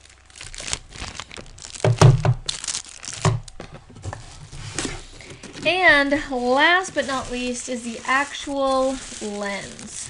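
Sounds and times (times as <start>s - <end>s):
plastic packaging crinkling: 0.0s - 10.0s
knocks: 1.9s - 2.4s.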